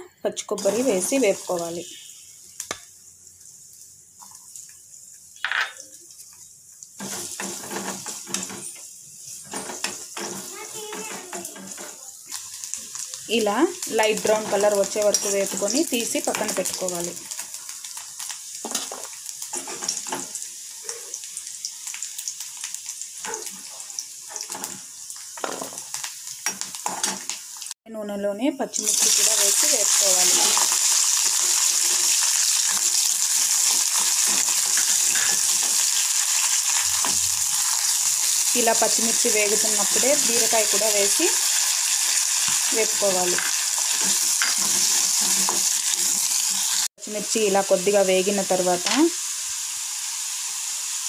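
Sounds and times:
food sizzling in hot oil: 0.3s - 27.8s, 28.6s - 51.0s
spatula scraping a pan: 7.0s - 12.0s, 18.6s - 20.4s, 30.1s - 38.4s, 42.3s - 46.9s.

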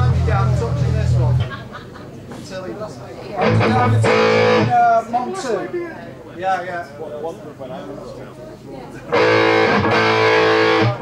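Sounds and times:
electric guitar chord ringing: 3.4s - 4.8s, 9.1s - 11.0s.

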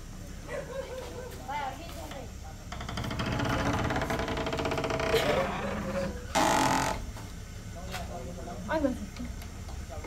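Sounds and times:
loud rasping noise: 2.8s - 7.1s.

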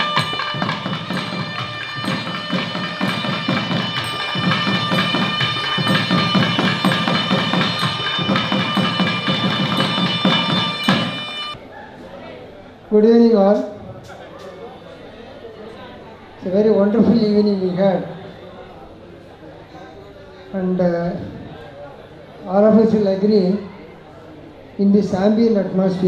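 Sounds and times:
rapid drum strokes: 0.0s - 11.6s
steady drone: 0.0s - 11.6s
sustained reed melody: 0.0s - 11.6s.

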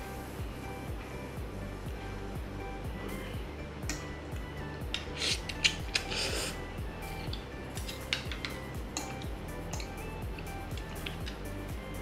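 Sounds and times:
background music with steady beat: 0.0s - 12.0s
cutlery clicking on plate: 7.3s - 10.0s.

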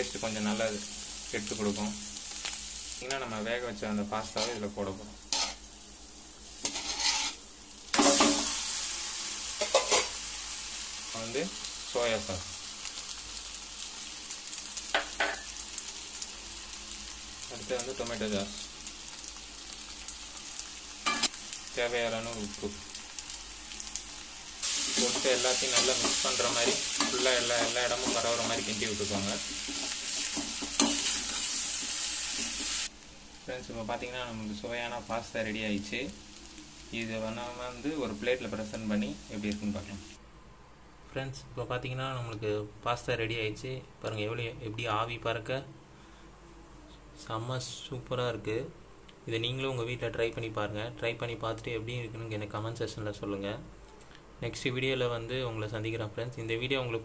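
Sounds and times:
food sizzling in a pan: 0.0s - 40.2s
metal spatula scraping: 4.2s - 4.7s, 5.3s - 5.6s, 6.6s - 7.4s
metal skimmer scraping a pan: 6.6s - 7.4s.

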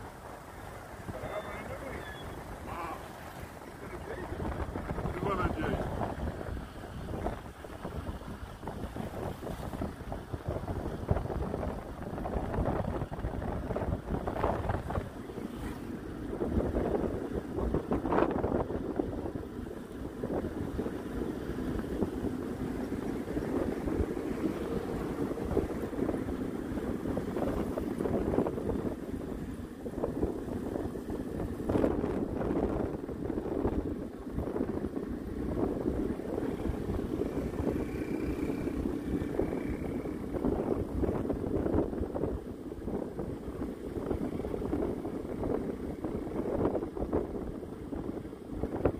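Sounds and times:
road noise: 0.0s - 48.9s
vehicle engine rumble: 0.0s - 48.9s
wind buffeting microphone: 0.0s - 48.9s.

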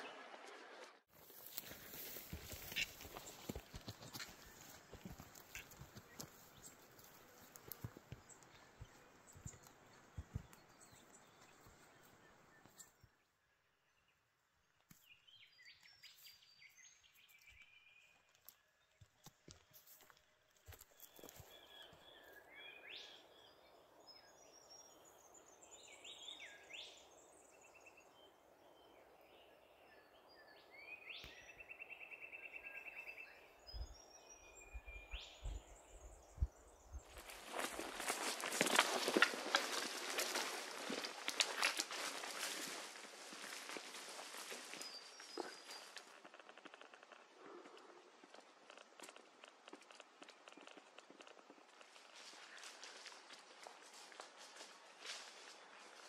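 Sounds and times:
footsteps through dry brush: 1.1s - 12.8s, 18.0s - 22.3s, 37.0s - 46.2s, 51.2s - 56.0s.

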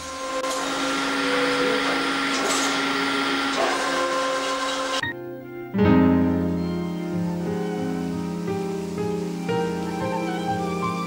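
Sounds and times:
machine whirring: 0.0s - 5.1s
background music: 3.0s - 11.0s.

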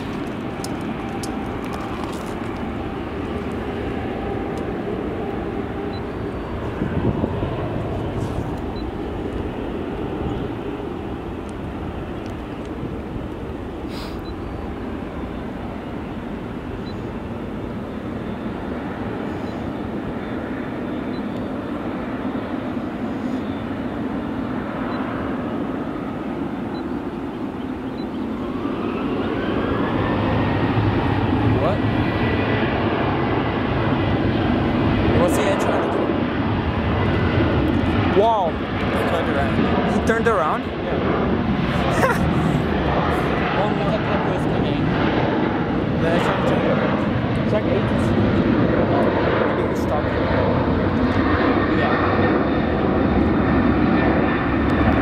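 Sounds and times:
jet engines rumbling: 0.0s - 55.0s
jet engines spooling up whine: 0.0s - 55.0s.

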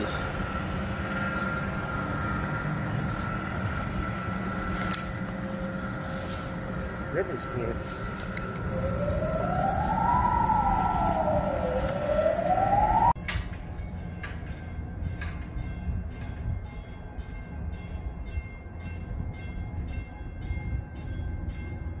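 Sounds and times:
siren wailing: 0.0s - 13.2s
steady high tone: 0.0s - 13.2s
low rumble: 0.0s - 13.6s.

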